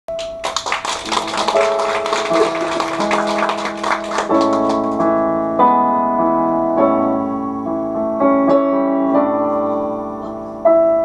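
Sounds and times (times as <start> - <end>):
piano chords: 0.1 - 11.0.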